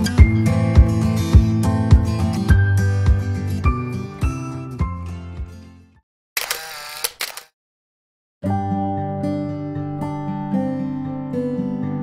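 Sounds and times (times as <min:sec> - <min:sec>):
sharp clicks: 0:06.4 - 0:07.5.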